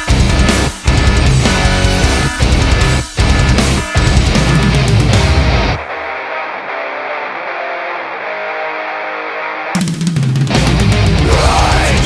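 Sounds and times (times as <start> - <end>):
distorted electric guitar riff: 0.0 - 12.0
heavy metal band playing: 0.0 - 12.0.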